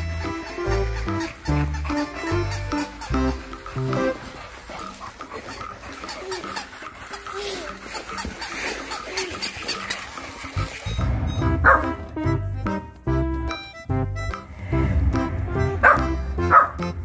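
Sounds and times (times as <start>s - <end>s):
puppy barking and yipping: 0.0s - 10.2s, 11.5s - 12.1s, 15.8s - 17.0s.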